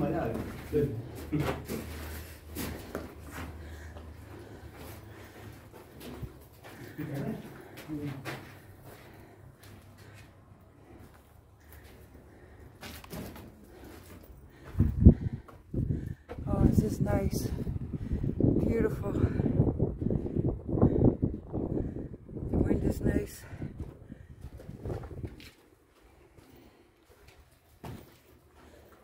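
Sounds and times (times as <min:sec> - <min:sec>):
wind buffeting on microphone: 0:14.7 - 0:25.5.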